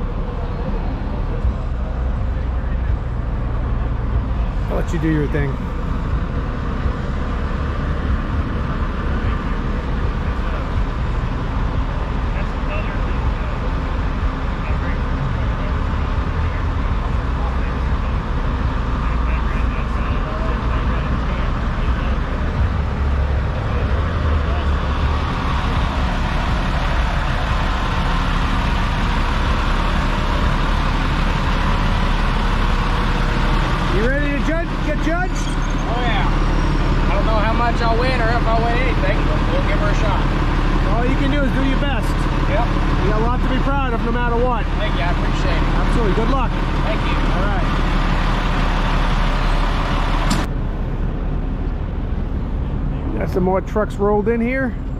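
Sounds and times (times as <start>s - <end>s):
people's voices: 0.0s - 50.5s
diesel truck engine idling: 0.0s - 54.9s.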